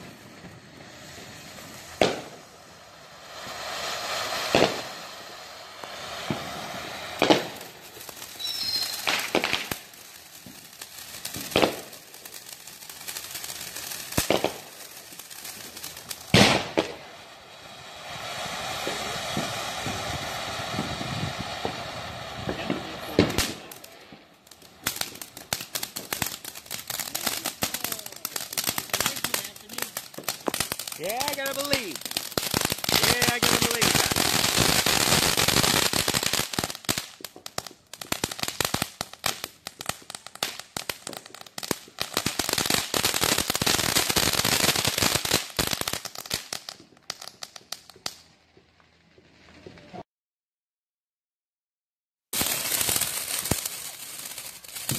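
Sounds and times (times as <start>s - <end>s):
fireworks hiss: 0.0s - 48.3s, 52.4s - 54.9s
fireworks crackling: 0.0s - 50.0s, 52.3s - 54.9s.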